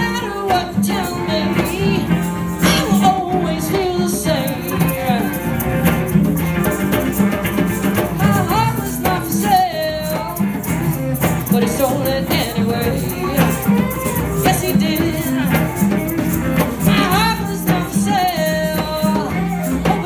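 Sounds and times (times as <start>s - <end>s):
electric guitars: 0.0s - 20.0s.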